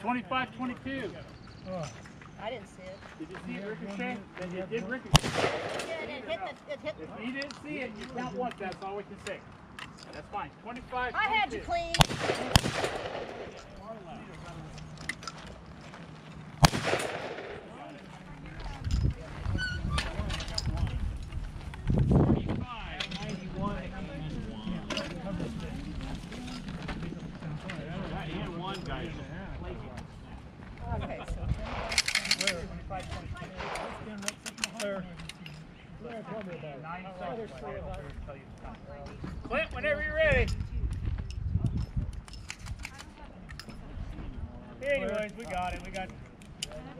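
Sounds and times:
people talking: 0.0 - 9.4, 17.6 - 21.1, 22.3 - 40.7, 42.8 - 46.9
loud gunshots with echo: 5.2 - 6.2, 12.0 - 13.6, 16.6 - 17.8
light clinking clicks: 40.5 - 43.8.

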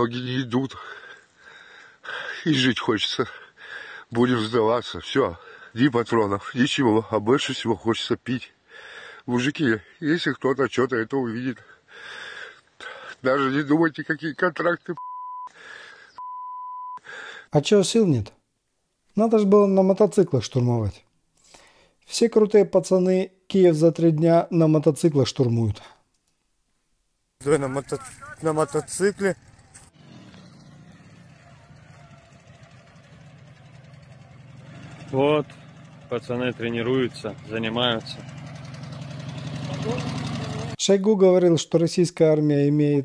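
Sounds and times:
censor bleep tone: 15.0 - 15.5, 16.2 - 17.0
man speaking: 17.5 - 18.4, 19.1 - 21.0, 22.0 - 26.0, 27.4 - 29.4, 36.1 - 38.2, 39.6 - 43.0
motorcycle engine approaching: 27.4 - 40.8.

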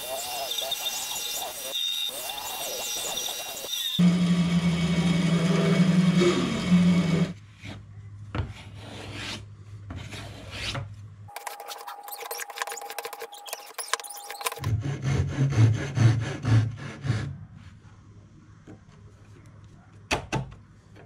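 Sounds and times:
bandsaw cutting wood: 0.0 - 7.4.

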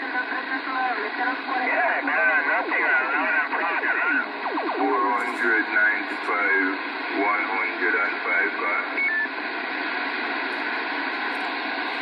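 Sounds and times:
voice over two-way radio: 0.0 - 9.2.

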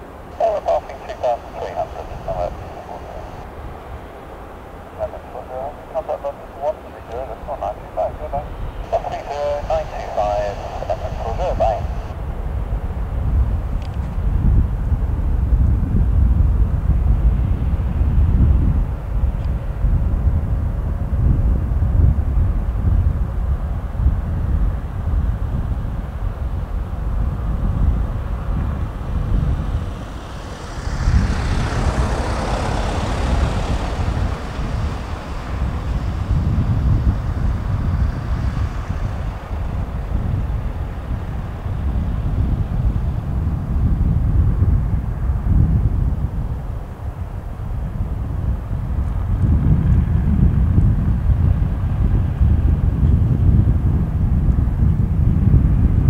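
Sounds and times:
jet engines rumbling: 0.0 - 54.3
wind noise on microphone: 0.0 - 56.0.

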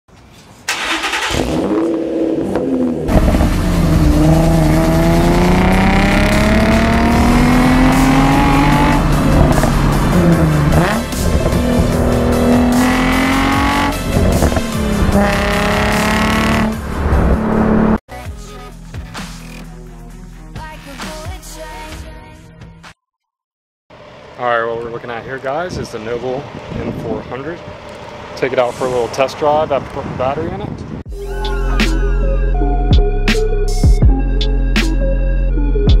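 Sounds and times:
car engine accelerating: 0.7 - 18.0.

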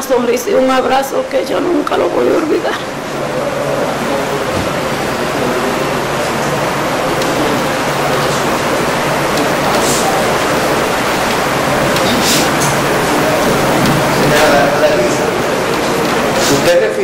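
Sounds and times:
microphone hiss: 0.0 - 17.0.

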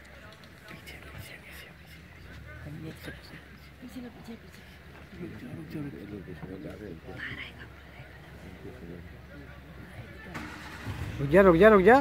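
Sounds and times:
murmured voices: 0.0 - 12.0
vehicle engine humming: 0.0 - 12.0.

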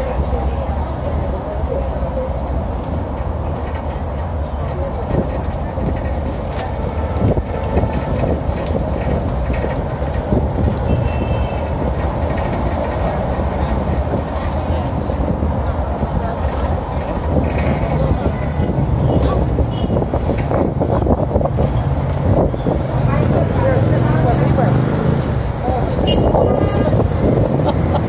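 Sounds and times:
bus engine rumble: 0.0 - 28.0
city traffic: 0.0 - 28.0.

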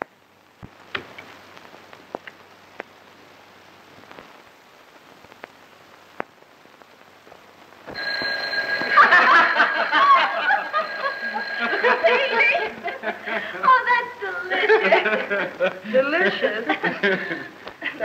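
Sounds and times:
faint hiss: 0.0 - 8.0, 11.6 - 18.0
telephone bell ringing: 7.9 - 13.2
group laughing and chatting: 8.8 - 18.0.

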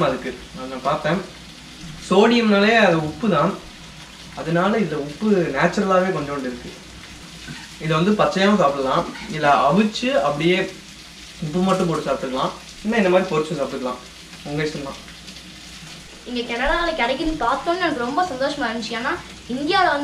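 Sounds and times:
food sizzling in a pan: 0.0 - 20.0
person talking: 16.3 - 20.0.

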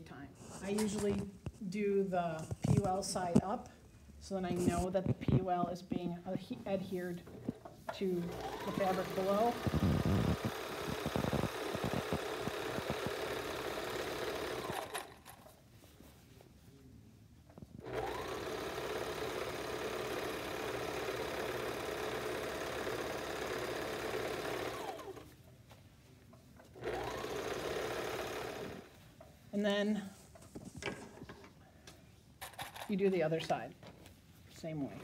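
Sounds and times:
overlock sewing machine running: 8.1 - 15.4, 17.8 - 25.3, 26.8 - 28.9.

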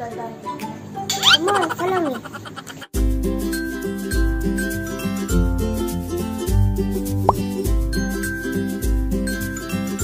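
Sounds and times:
cheerful children's music: 3.0 - 10.0.

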